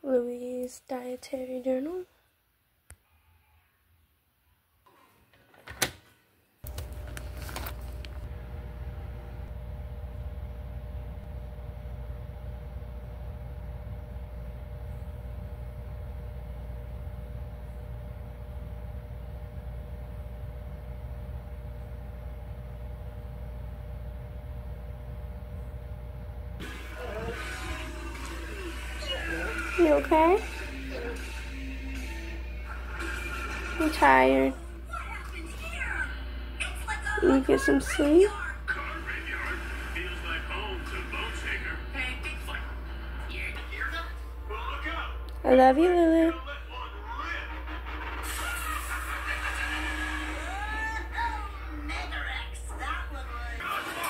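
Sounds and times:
low hum: 6.7s - 35.4s
faint voices: 26.6s - 31.4s.

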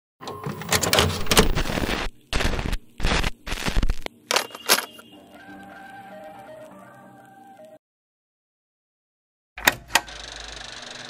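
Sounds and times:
harsh static noise bursts: 0.8s - 5.2s
faint music with held notes: 5.0s - 7.8s.

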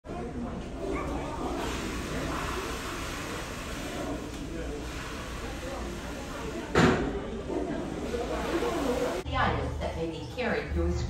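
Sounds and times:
faint indistinct voices: 0.0s - 11.0s.

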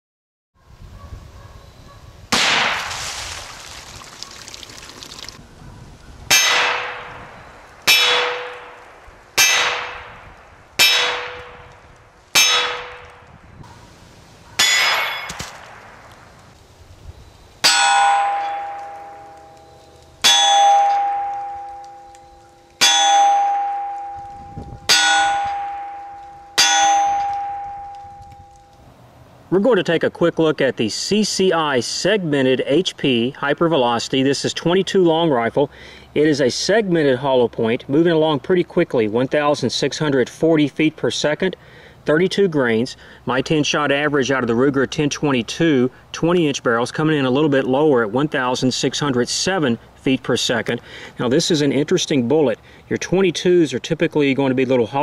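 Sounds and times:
rifle shots: 2.3s - 3.0s, 14.6s - 16.1s
steel plate ringing: 6.3s - 13.2s, 14.6s - 15.4s, 17.6s - 28.8s.

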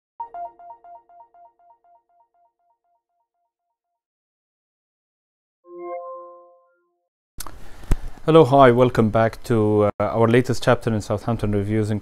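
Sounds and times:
electronic two-note chime: 5.7s - 7.0s.

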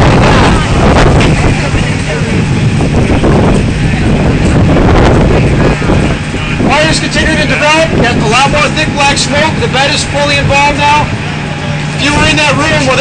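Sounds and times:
constant low hum: 0.0s - 13.0s
loud steady rumbling: 0.0s - 13.0s
man's voice: 5.3s - 11.1s, 12.0s - 13.0s.

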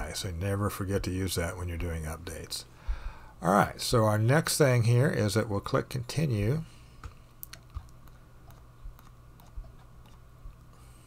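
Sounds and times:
low steady hum: 0.0s - 11.0s
computer mouse clicking: 7.4s - 10.8s.

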